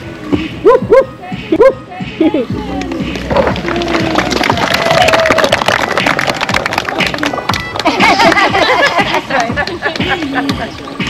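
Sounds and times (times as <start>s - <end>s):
music: 0.0s - 11.0s
guests clapping: 2.8s - 11.0s.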